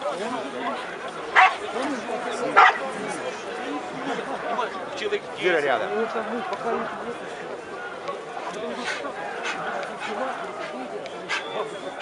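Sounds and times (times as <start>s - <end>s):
crowd chatter: 0.0s - 12.0s
dog barking: 1.4s - 1.6s, 2.6s - 2.8s.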